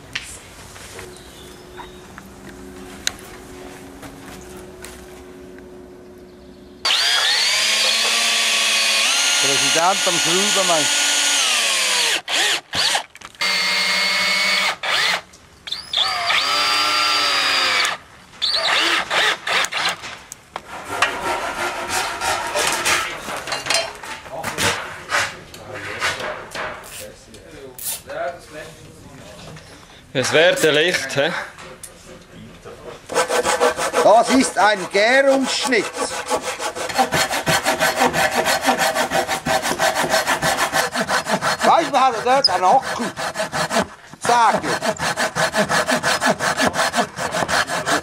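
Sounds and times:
cordless drill driving screws: 6.9s - 20.0s.

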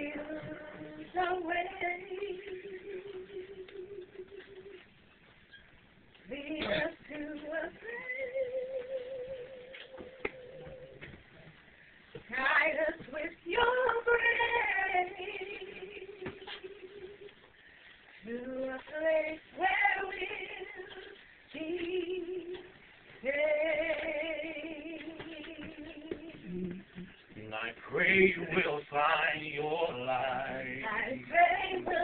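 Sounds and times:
person singing unaccompanied: 18.3s - 32.0s.

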